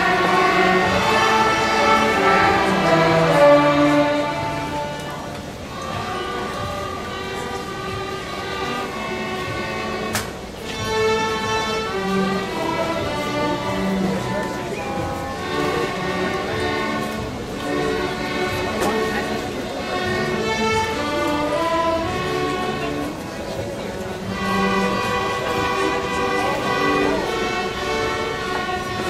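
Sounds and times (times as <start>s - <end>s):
string orchestra playing: 0.0s - 29.0s.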